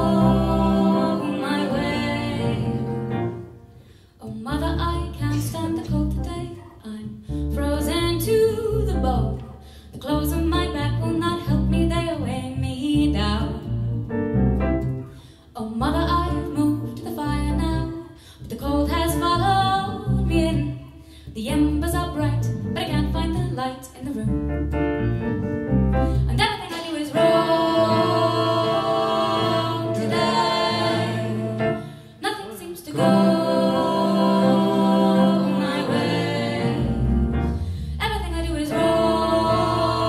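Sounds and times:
voices singing: 0:00.0 - 0:03.3, 0:26.7 - 0:37.3, 0:38.6 - 0:40.0
stage keyboard: 0:24.4 - 0:26.4, 0:33.0 - 0:40.0.

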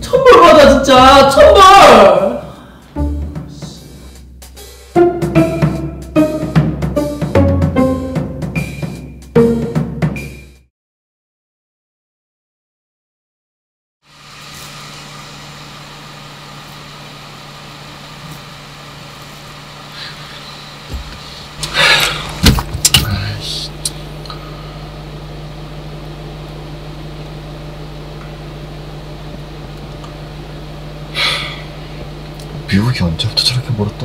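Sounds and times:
car engine idling: 0:14.2 - 0:34.0
objects knocking inside car: 0:20.9 - 0:23.1.

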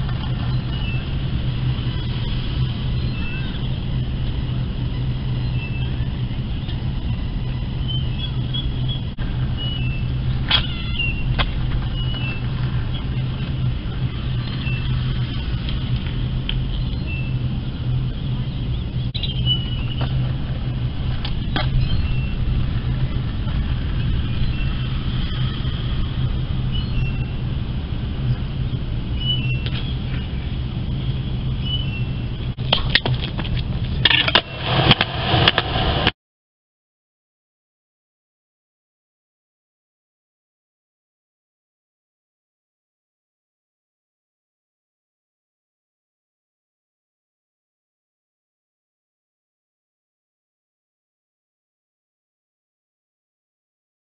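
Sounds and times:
road traffic rumble: 0:00.0 - 0:36.2.

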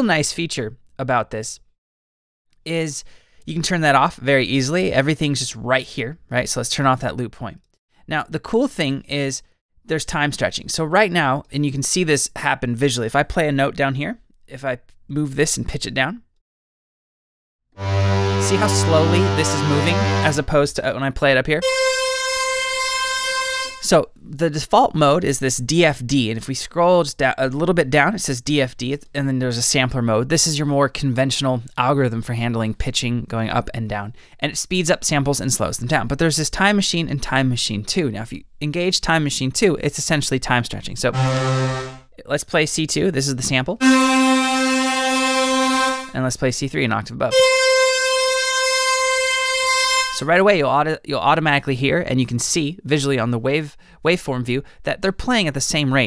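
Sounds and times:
bright held synth tone: 0:17.8 - 0:20.6, 0:21.6 - 0:23.9, 0:41.2 - 0:42.0, 0:43.8 - 0:46.2, 0:47.3 - 0:50.3.

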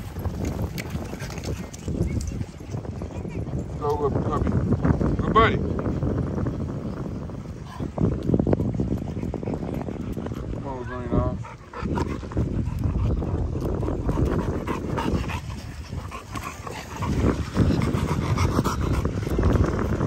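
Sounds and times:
dog panting heavily: 0:09.0 - 0:20.0.

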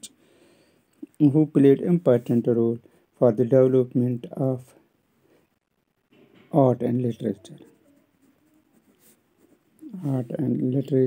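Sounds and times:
pen scratching on paper: 0:07.4 - 0:10.4.

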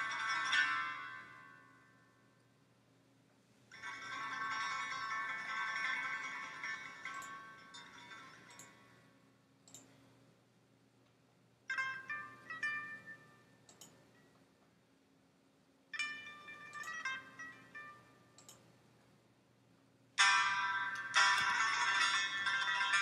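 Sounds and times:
chiming bell-like music: 0:00.0 - 0:01.8, 0:03.8 - 0:08.8, 0:16.0 - 0:18.2, 0:20.2 - 0:23.0.

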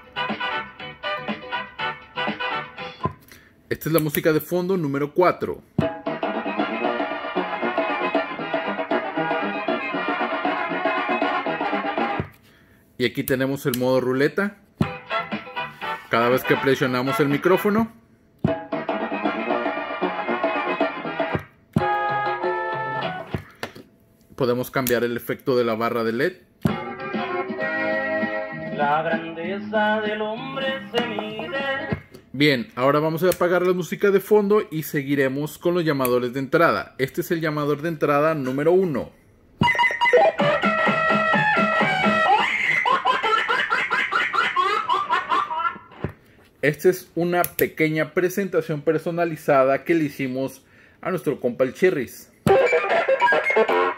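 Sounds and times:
background music through radio: 0:14.8 - 0:17.9, 0:18.5 - 0:23.8, 0:26.6 - 0:32.4, 0:39.6 - 0:43.0, 0:52.4 - 0:53.9.

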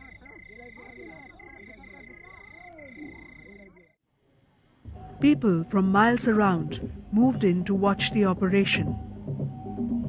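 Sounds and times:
frogs croaking: 0:00.0 - 0:04.0.

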